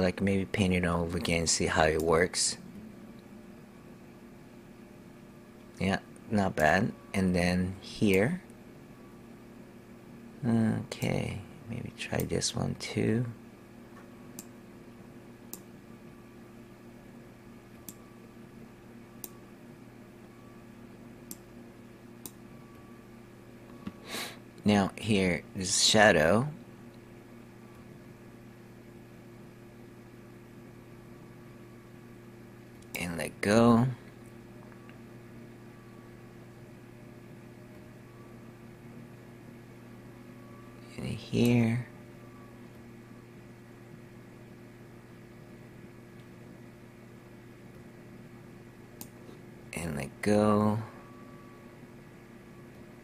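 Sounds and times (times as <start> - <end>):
faint low hum: 0.0 - 53.0
computer mouse clicks: 19.2 - 19.4.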